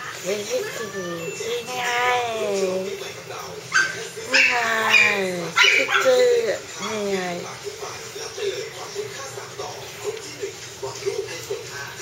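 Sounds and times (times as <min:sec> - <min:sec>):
person talking high-pitched: 0:00.2 - 0:03.0.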